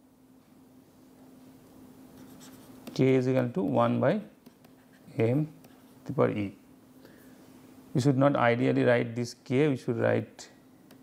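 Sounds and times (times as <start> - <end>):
faint steady hum: 0.0 - 11.0
stylus scratching on pen tablet: 2.2 - 3.0, 3.6 - 5.8.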